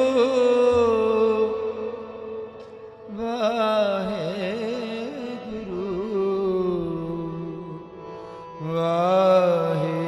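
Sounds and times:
harmonium drone: 0.0 - 10.0
man singing: 0.0 - 10.0.

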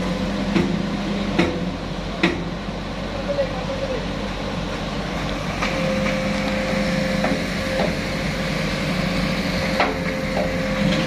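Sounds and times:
crane engine and hydraulics whine: 0.0 - 11.0.

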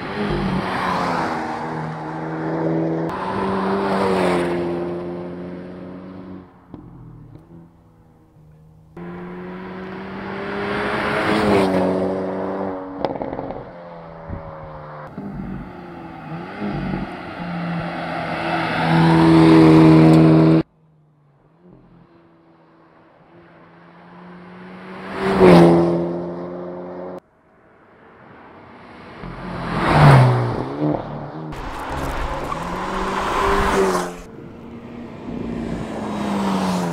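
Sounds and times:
car engine passing by: 0.0 - 6.5, 9.0 - 20.7, 28.8 - 36.9.

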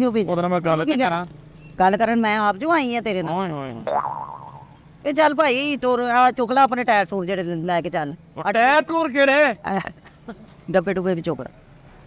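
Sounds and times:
comic boing sound effect: 3.9 - 4.8.

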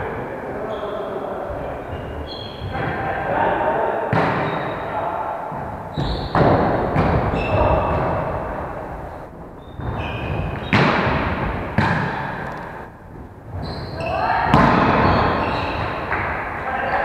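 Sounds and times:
volleyball slaps echoing in hall: 0.0 - 17.0.

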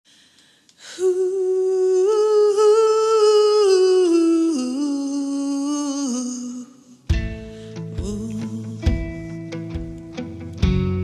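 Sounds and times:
woman humming: 0.9 - 7.0.

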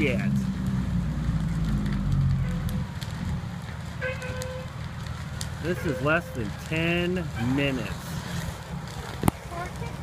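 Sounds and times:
fire crackling: 0.0 - 10.0
fire roaring: 0.0 - 10.0.

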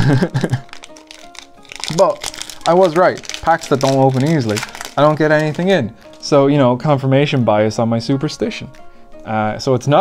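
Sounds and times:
foil wrapper crinkling: 0.0 - 6.3
soft background music: 0.0 - 10.0
person speaking: 1.1 - 10.0.

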